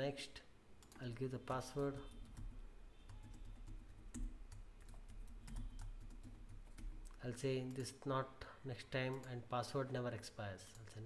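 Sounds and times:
keyboard typing: 0:00.8 - 0:07.9.

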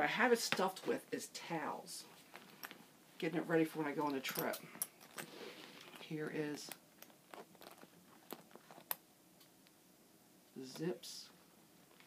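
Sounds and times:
leather bag handling clicks: 0:04.3 - 0:09.0.

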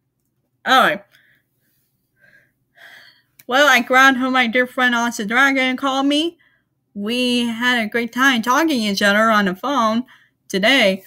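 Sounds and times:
speech: 0:00.7 - 0:01.1, 0:03.5 - 0:06.4, 0:07.0 - 0:11.0
faint breaths: 0:01.1 - 0:03.4.

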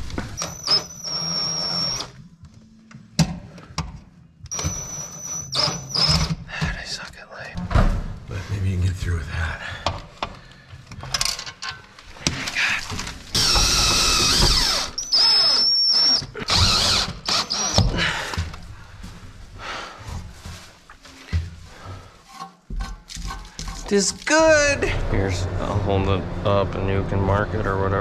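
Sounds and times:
cordless drill driving screws: 0:00.3 - 0:02.2, 0:04.5 - 0:06.3, 0:13.3 - 0:17.9.

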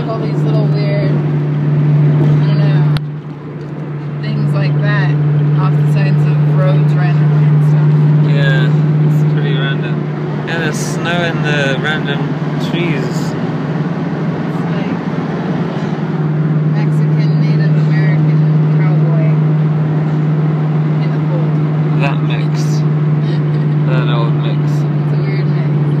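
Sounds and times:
car road and engine drone: 0:00.0 - 0:26.0.

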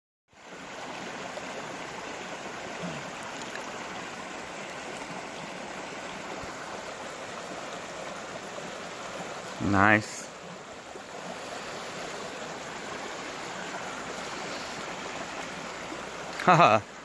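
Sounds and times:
creek water trickling over rocks: 0:00.3 - 0:17.0.

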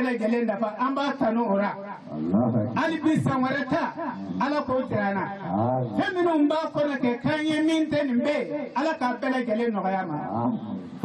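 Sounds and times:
man preaching into microphone: 0:00.0 - 0:11.0.

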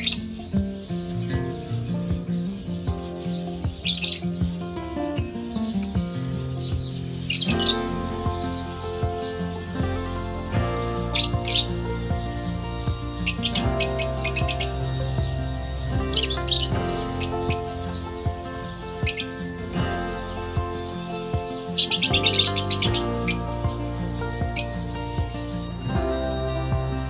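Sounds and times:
background music: 0:00.0 - 0:27.0
lovebirds chirping: 0:00.0 - 0:27.0.

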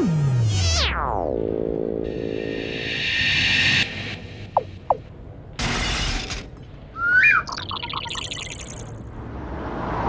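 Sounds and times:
high bird-like chirps: 0:07.0 - 0:08.9.

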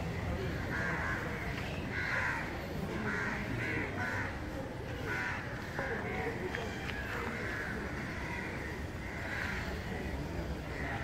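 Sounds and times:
street background hum: 0:00.0 - 0:11.0
crows cawing: 0:00.5 - 0:05.8, 0:07.2 - 0:09.9.

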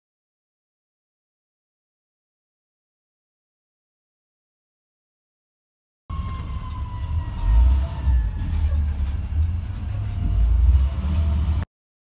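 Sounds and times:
emergency vehicle siren: 0:06.1 - 0:11.6
heavy low vehicle rumble: 0:06.1 - 0:11.7.

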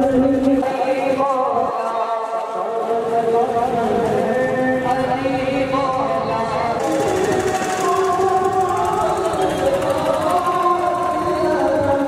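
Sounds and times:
fast high rattle: 0:06.8 - 0:10.3.

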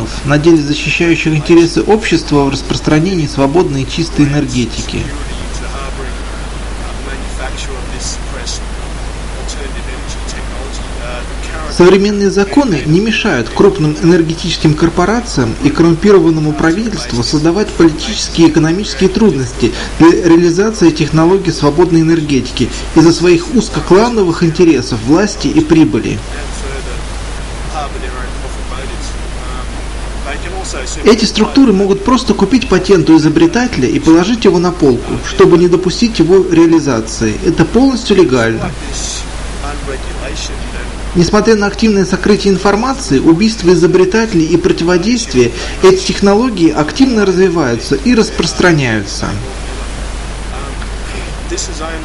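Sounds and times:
low rumble: 0:00.0 - 0:31.6, 0:37.2 - 0:46.3, 0:46.9 - 0:52.0
faint man's voice: 0:00.0 - 0:52.0
steady noisy hiss: 0:00.0 - 0:52.0
steady rushing noise: 0:00.0 - 0:52.0.

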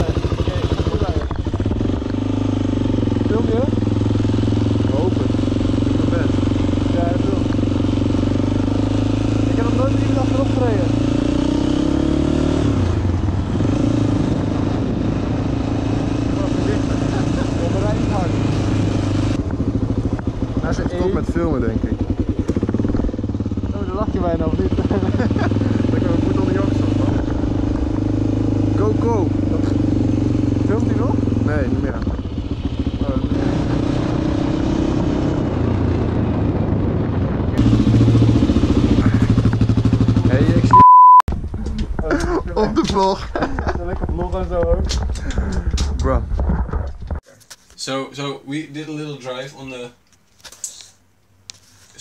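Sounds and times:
voices: 0:00.0 - 0:01.4, 0:04.7 - 0:07.6, 0:09.4 - 0:11.0, 0:16.2 - 0:18.6, 0:23.6 - 0:27.5, 0:47.3 - 0:50.0
motorcycle engine running: 0:00.0 - 0:47.2.

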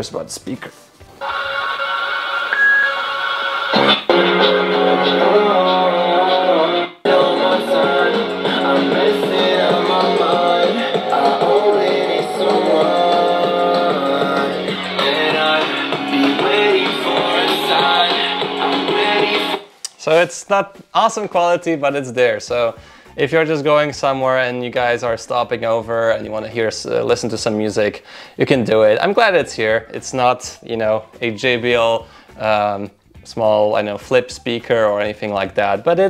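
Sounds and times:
guitar music through small speaker: 0:01.2 - 0:19.6.

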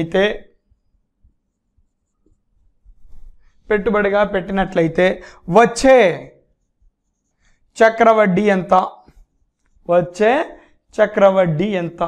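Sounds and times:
marker writing on whiteboard: 0:00.0 - 0:11.8.

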